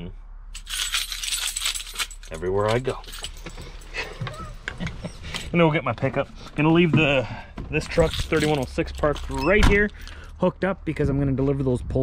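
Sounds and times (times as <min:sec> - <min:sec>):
keys jangling: 0:00.6 - 0:05.6, 0:07.8 - 0:10.4.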